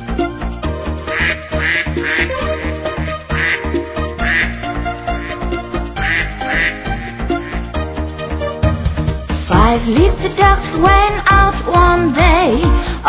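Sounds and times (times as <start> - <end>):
upbeat children's instrumental tune: 0.0 - 13.0.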